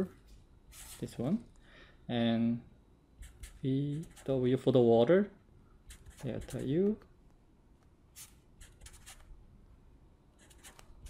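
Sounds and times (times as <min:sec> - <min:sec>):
marker scratching on paper: 0:00.7 - 0:01.1, 0:03.2 - 0:04.4, 0:05.9 - 0:06.8, 0:08.2 - 0:09.3, 0:10.4 - 0:11.0.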